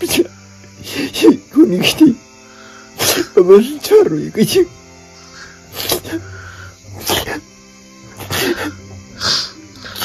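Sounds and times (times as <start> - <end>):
background music: 0.0 - 10.0
sniffling breaths: 2.4 - 3.4, 5.1 - 7.4, 8.2 - 10.0
man sobbing: 8.2 - 10.0.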